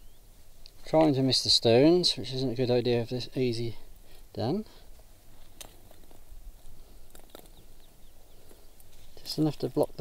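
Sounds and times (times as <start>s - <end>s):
dry soil patters and rustling: 0.0s - 10.0s.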